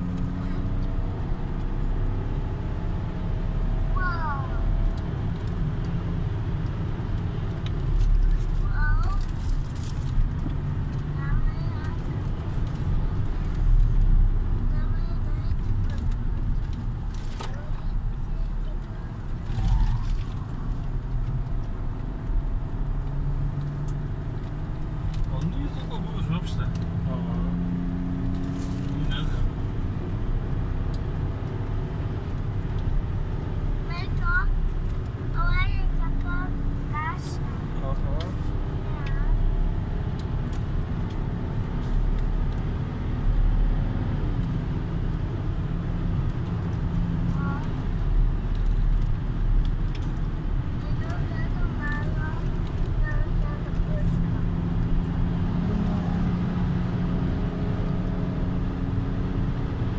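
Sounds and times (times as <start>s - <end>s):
car engine: 0.0s - 59.9s
road noise inside car: 0.0s - 59.9s.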